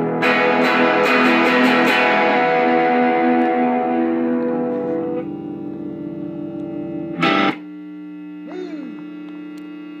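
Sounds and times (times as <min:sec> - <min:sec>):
distorted electric guitar: 0:00.0 - 0:09.3.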